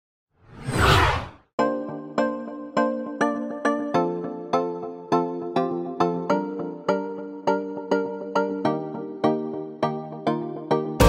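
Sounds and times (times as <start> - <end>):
whoosh sound effect: 0.4 - 1.4.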